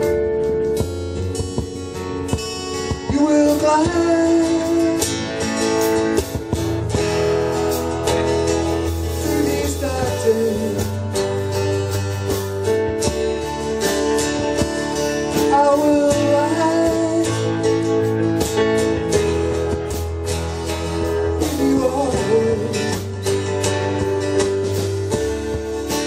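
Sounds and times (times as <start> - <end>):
acoustic guitars strumming: 0.0 - 26.0
drum kit keeping time: 0.0 - 26.0
piano: 0.0 - 26.0.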